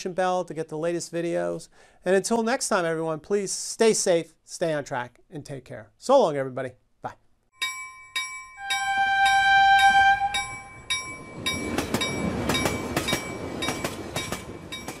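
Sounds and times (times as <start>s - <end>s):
ringing tones: 7.6s - 15.0s
train rumbling on rails: 8.7s - 15.0s.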